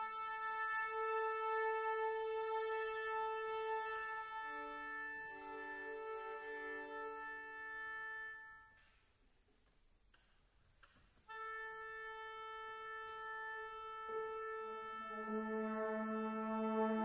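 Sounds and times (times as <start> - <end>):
sustained brass and wind chord: 0.0 - 8.8, 11.3 - 17.0.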